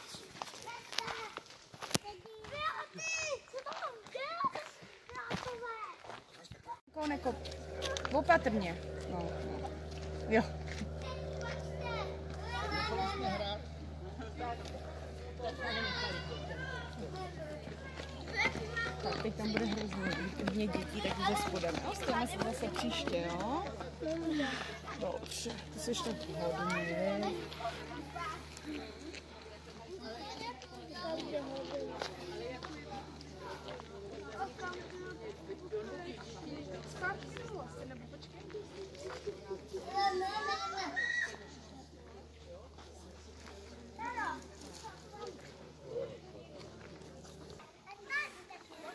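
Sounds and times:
background chatter: 0.0s - 48.9s
children calling and talking: 0.0s - 48.9s
steady low hum: 6.9s - 48.0s.

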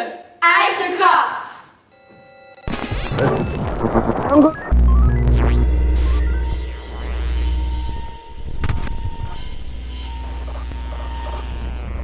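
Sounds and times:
glitchy clicks: 2.5s - 12.0s
electronic sweeps: 2.6s - 12.0s
deep bass drone: 2.7s - 12.0s
static hiss burst: 2.7s - 12.0s.

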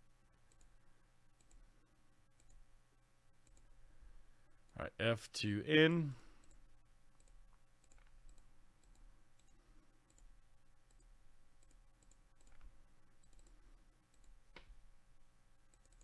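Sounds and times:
low steady hum: 0.0s - 16.0s
computer mouse clicks: 0.5s - 0.8s, 1.4s - 1.7s, 2.4s - 2.6s, 3.4s - 3.8s, 6.4s - 14.8s, 15.7s - 16.0s.

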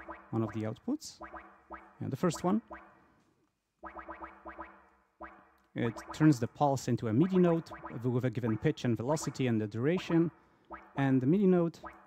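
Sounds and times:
synthesizer repeated short notes: 0.0s - 3.1s, 3.8s - 6.6s, 7.2s - 12.0s.

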